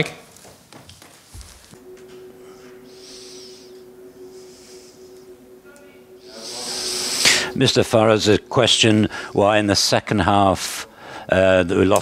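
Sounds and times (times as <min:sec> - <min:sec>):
microphone hum: 0:01.8 - 0:09.4.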